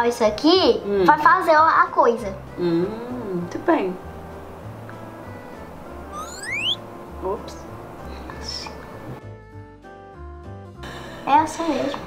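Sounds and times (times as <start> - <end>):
rising whistle glide: 6.1 - 6.8.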